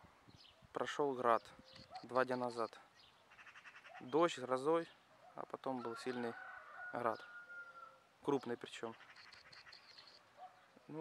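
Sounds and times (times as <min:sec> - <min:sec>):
faint high-pitched chirping: 0:00.2 - 0:05.4, 0:07.1 - 0:11.0.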